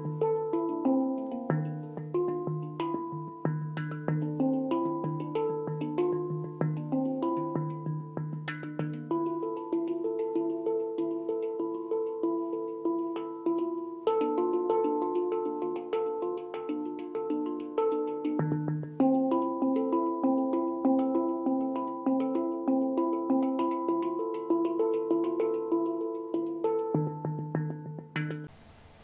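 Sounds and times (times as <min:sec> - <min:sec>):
handpan notes ringing: 0:00.0 - 0:28.5.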